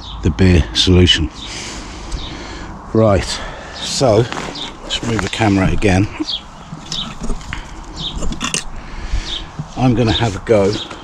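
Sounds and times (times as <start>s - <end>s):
small bird chirping: 3.8s - 11.0s.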